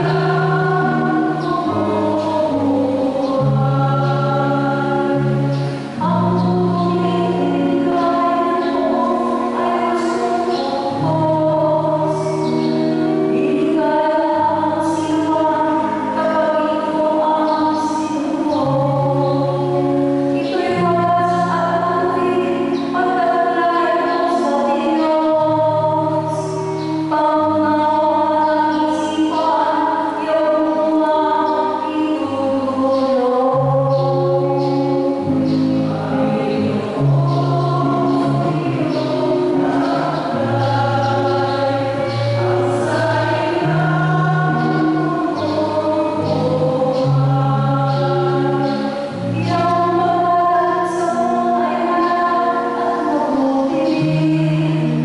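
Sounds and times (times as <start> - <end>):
choir singing a hymn: 0.0 - 55.0
sustained instrumental chords: 0.0 - 55.0.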